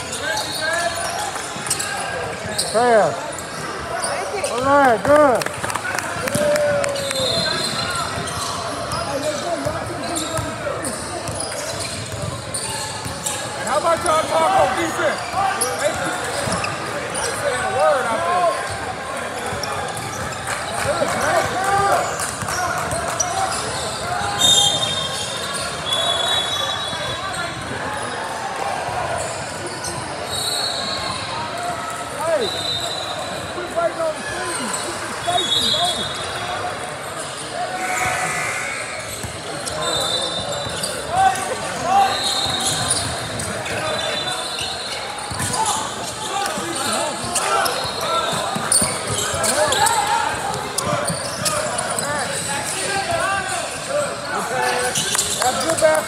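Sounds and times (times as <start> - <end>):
sneaker squeaks: 0.0 - 5.2, 6.3 - 28.3, 28.9 - 56.0
indistinct shouts and chatter: 0.0 - 56.0.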